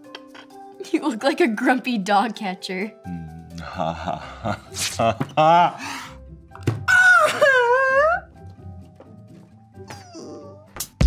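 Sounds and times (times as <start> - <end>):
quiet background music: 0.0 - 11.0
soft whimpering cry: 9.9 - 10.8.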